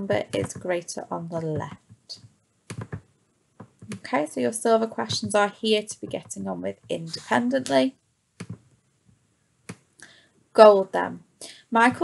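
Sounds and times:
computer mouse clicks: 0:01.7 - 0:03.0.

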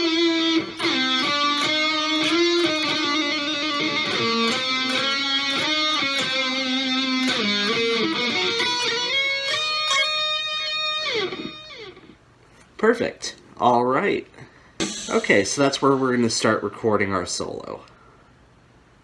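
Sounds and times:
electric guitar lead lines: 0:00.0 - 0:12.2.

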